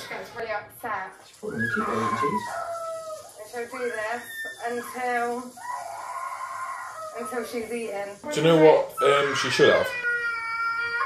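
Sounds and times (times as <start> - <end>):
girl crying and whining: 10.0 - 11.0.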